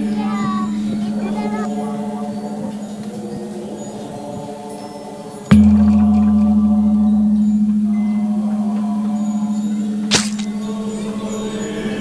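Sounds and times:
deep struck bell ringing: 5.5s - 12.0s.

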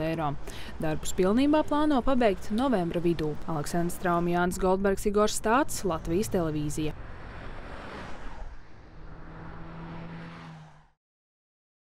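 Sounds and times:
low engine hum: 0.0s - 11.0s
vehicles driving past: 0.0s - 11.0s.

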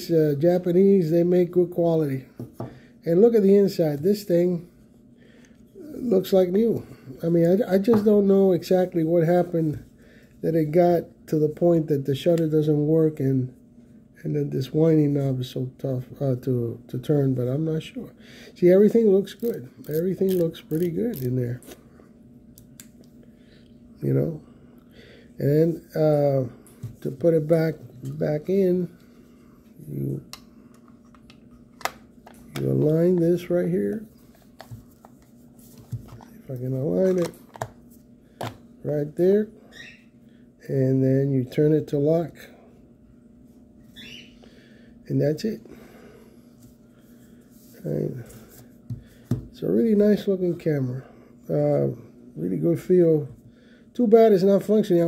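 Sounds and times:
faint steady hum: 0.0s - 55.0s.

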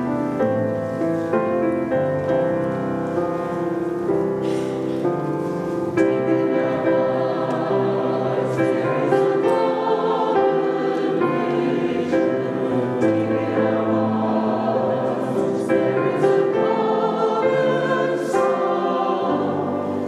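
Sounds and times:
choir singing a hymn: 1.4s - 20.0s.

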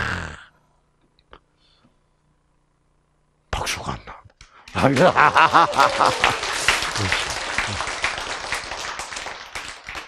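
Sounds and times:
audience applause: 4.7s - 10.0s.

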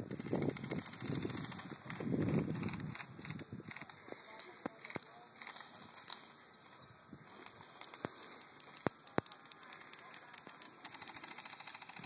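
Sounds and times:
fast patter of shots: 0.0s - 4.0s, 7.3s - 12.0s.

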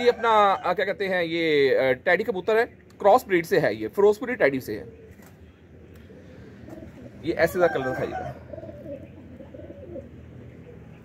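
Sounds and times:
pigeons cooing: 4.5s - 11.0s.

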